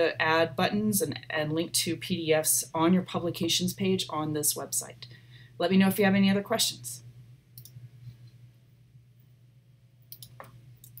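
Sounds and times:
steady low hum: 0.0 - 11.0
computer mouse clicks: 7.6 - 7.8, 10.1 - 11.0.

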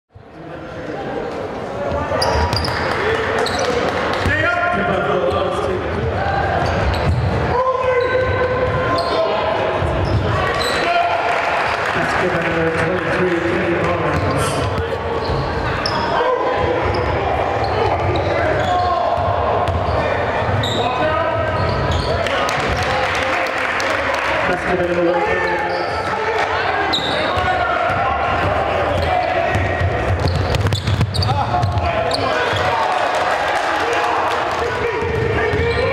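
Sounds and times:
sneakers squeaking: 1.9 - 4.3, 6.0 - 10.9, 14.0 - 22.7, 25.4 - 32.8, 35.0 - 35.9.

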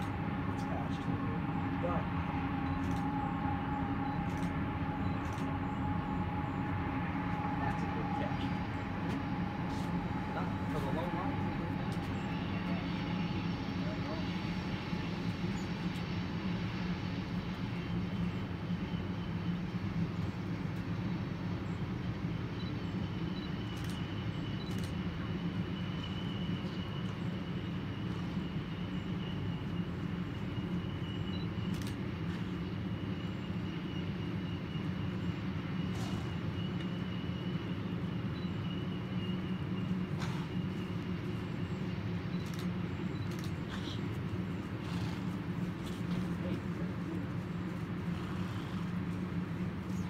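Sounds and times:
train wheels rumbling on rail: 0.0 - 21.8, 23.2 - 50.0.

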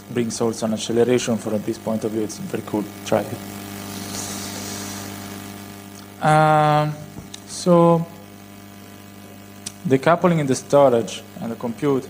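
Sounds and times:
low mains hum: 0.0 - 12.0
man speaking: 6.2 - 8.1, 9.9 - 12.0.

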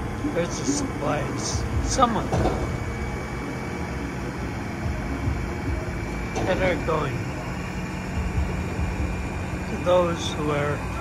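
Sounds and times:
engine and machinery rumble: 0.0 - 11.0
faint steady hum: 0.0 - 11.0.

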